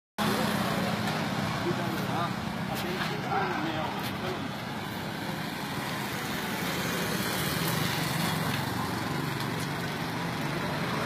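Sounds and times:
faint voices: 0.2 - 4.8
road noise: 0.2 - 11.0
vehicle engines passing: 0.2 - 11.0.

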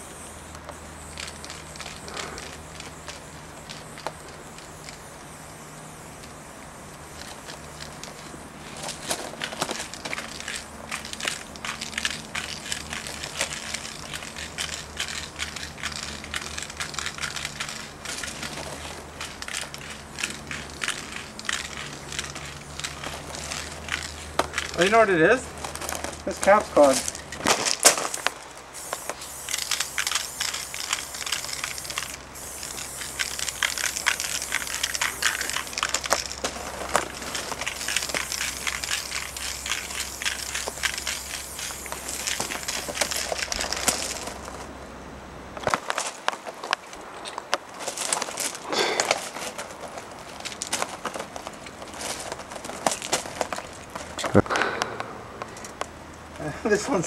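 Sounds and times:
aerosol spray can hissing: 27.9 - 44.2.

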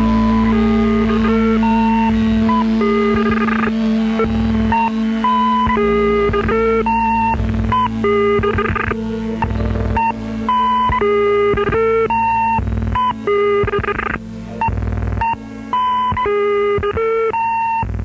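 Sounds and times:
low bass: 0.0 - 16.9
synthesizer melody: 0.0 - 17.3
held synth drone: 0.0 - 18.0.

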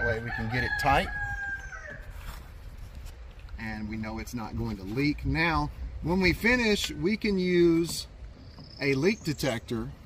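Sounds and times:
rooster crowing: 0.0 - 2.2.

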